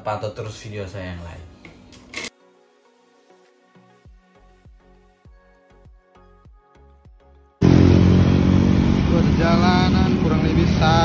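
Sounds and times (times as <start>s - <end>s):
vehicle engine and road noise: 7.6s - 11.0s.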